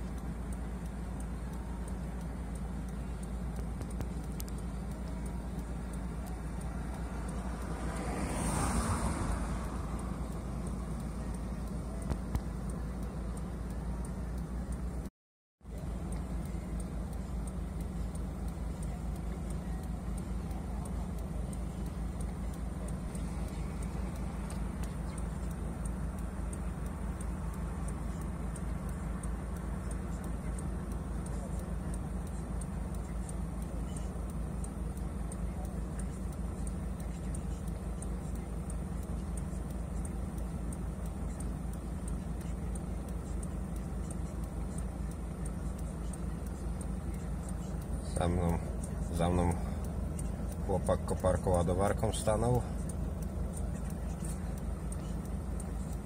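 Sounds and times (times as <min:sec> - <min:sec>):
van engine idling: 0:00.0 - 0:56.0.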